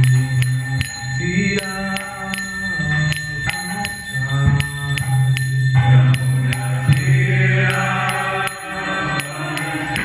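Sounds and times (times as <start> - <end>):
hand cymbals striking: 0.0 - 10.0
man singing prayers: 1.2 - 4.8, 5.8 - 10.0
steady drone: 2.4 - 10.0.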